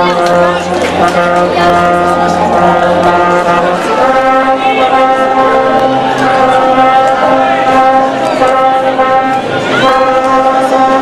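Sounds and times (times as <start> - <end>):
brass band playing: 0.0 - 11.0
trombones holding long chords: 0.0 - 11.0.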